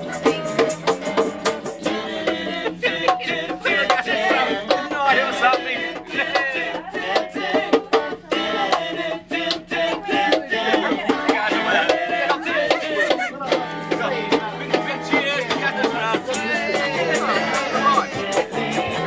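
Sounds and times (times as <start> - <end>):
acoustic and electric guitars: 0.0 - 19.0
person singing: 10.6 - 19.0.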